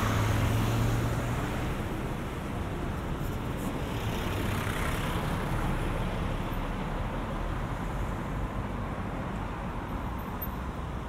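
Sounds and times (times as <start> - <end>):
city road traffic: 0.0 - 11.0.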